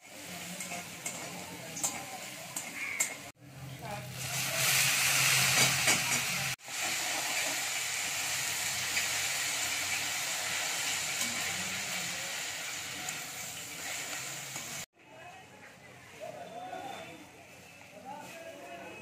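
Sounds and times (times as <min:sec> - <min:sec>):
leaves sizzling in hot oil: 0:00.0 - 0:14.9.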